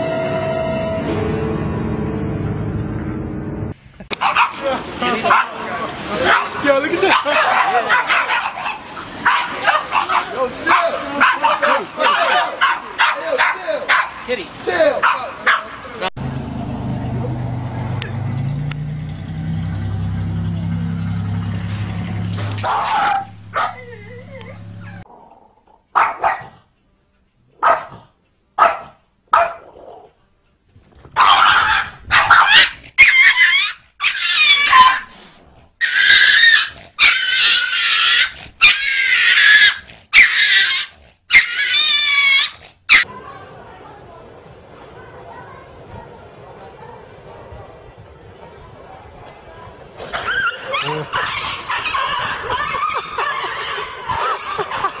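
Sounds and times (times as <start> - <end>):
small dogs barking and yapping: 4.1 - 16.1, 22.6 - 25.1, 25.9 - 26.6, 27.6 - 28.0, 28.6 - 30.1, 31.1 - 35.1, 35.8 - 43.2, 50.0 - 55.0
loud wavering animal cries: 32.4 - 34.9, 35.8 - 43.1.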